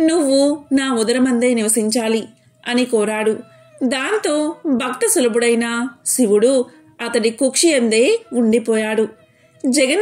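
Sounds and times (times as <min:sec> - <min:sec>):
woman narrating: 0:00.0 - 0:10.0.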